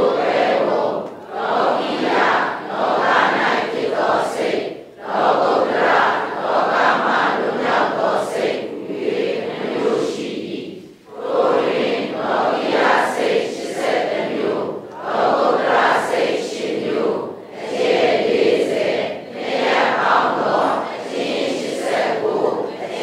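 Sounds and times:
voices reciting in unison: 0:00.0 - 0:23.0.

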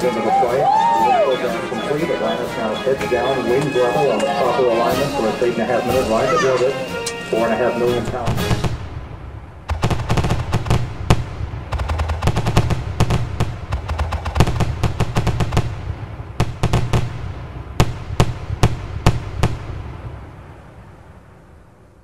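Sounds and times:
fireworks bursting: 0:00.0 - 0:21.3
low rumble: 0:07.3 - 0:22.0.

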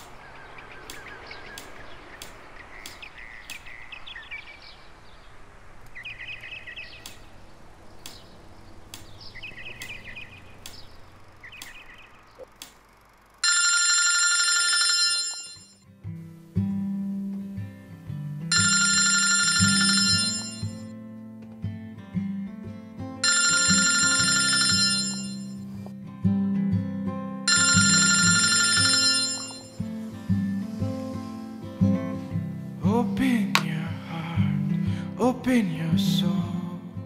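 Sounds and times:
bird chirping: 0:00.0 - 0:13.3
phone ringtone chime: 0:13.4 - 0:15.8, 0:18.5 - 0:20.9, 0:23.2 - 0:25.8, 0:27.5 - 0:30.5
plucked acoustic guitar music: 0:25.6 - 0:27.4.

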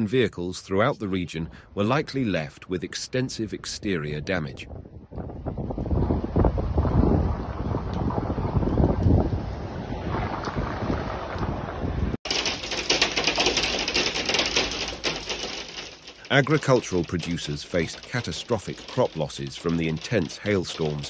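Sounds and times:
wind buffeting microphone: 0:03.9 - 0:15.7.

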